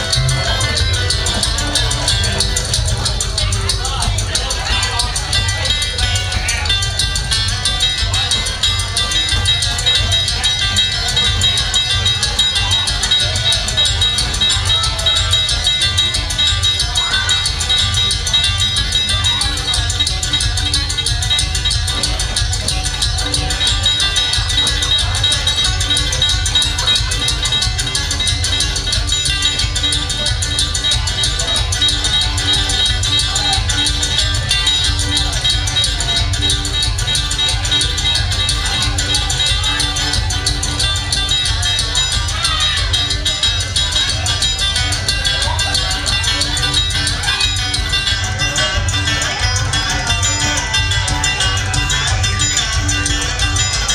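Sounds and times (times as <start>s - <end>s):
banjo: 0.0s - 53.9s
mandolin: 0.0s - 53.9s
steady bass line: 0.0s - 53.9s.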